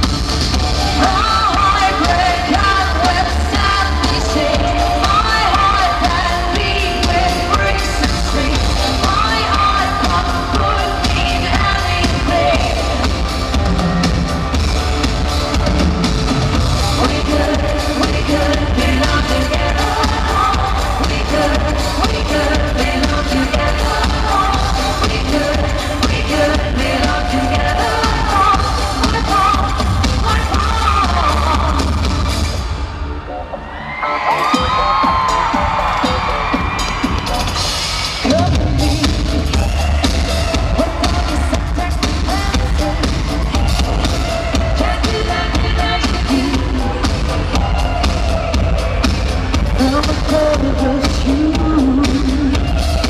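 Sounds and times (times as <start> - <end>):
live pop music with heavy bass: 0.0 - 53.0
woman singing lead vocal: 0.7 - 14.2, 16.8 - 32.6, 38.2 - 53.0.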